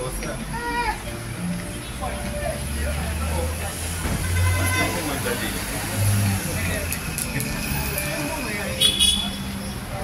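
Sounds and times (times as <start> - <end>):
people's voices: 0.0 - 10.0
traffic noise: 0.0 - 10.0.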